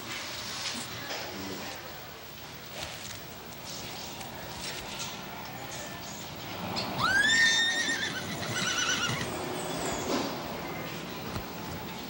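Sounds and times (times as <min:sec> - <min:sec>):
horse whinnying: 0:07.0 - 0:09.4.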